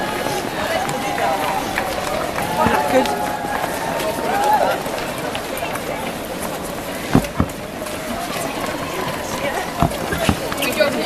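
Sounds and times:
people's voices and calls: 0:00.0 - 0:11.0
runners' footsteps on paving: 0:00.0 - 0:11.0.

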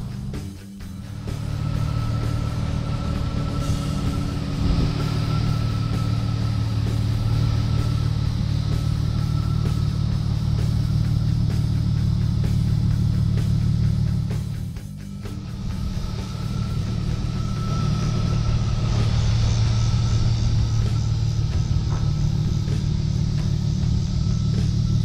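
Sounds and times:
rock music with guitar: 0:00.0 - 0:25.0.

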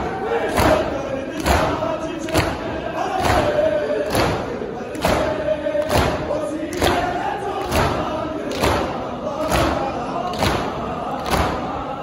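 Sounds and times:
crowd chanting: 0:00.0 - 0:12.0.

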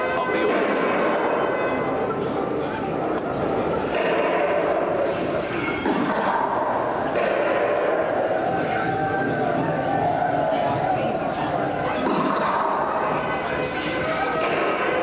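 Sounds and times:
indistinct voices: 0:00.0 - 0:15.0.

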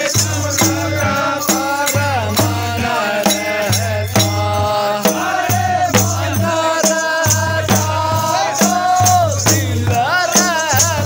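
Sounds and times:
drum steady beat: 0:00.0 - 0:11.0
men singing in chorus: 0:00.0 - 0:11.0.

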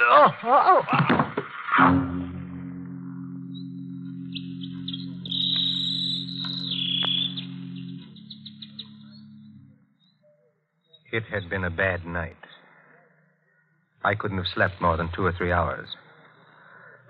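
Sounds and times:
low organ chord: 0:01.9 - 0:12.8, 0:13.5 - 0:17.0
canary trilling and chirping: 0:04.2 - 0:09.6.

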